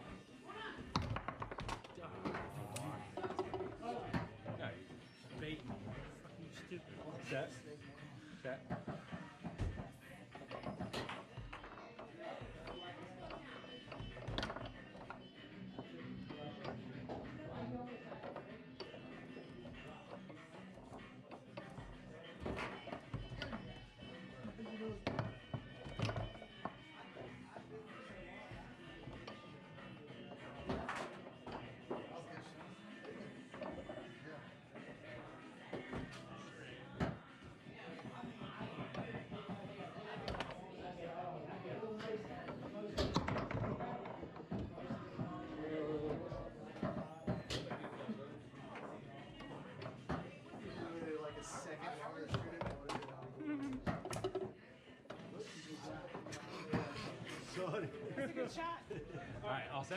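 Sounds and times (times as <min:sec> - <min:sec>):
music: 0:00.0 - 0:59.9
room chatter: 0:00.0 - 0:59.9
foosball knocks and clacks: 0:00.9 - 0:04.6, 0:08.6 - 0:15.2, 0:37.0 - 0:40.6, 0:42.4 - 0:50.6, 0:53.8 - 0:55.2.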